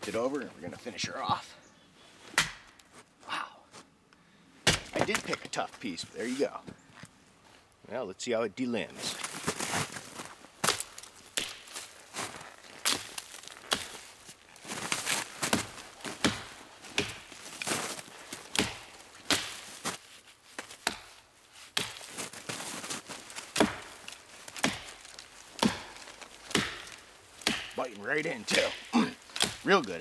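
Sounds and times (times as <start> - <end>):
axe chopping branches: 2.3 - 2.9, 4.6 - 5.6, 10.6 - 30.0.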